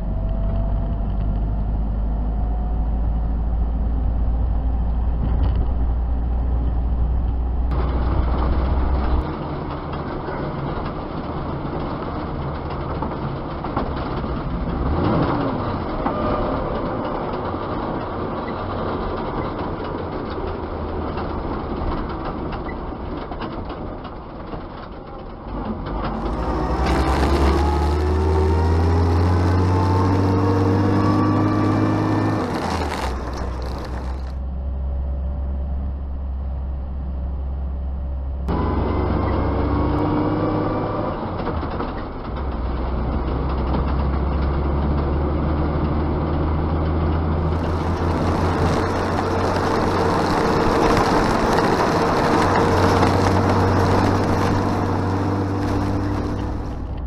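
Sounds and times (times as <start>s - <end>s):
truck engine: 0.0s - 57.0s
engine accelerating: 25.9s - 34.4s, 38.4s - 57.0s.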